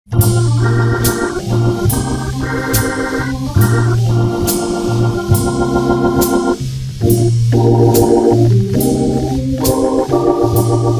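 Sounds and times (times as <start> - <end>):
organ playing slow jazz: 0.1 - 10.9
cymbal strikes: 0.2 - 10.9.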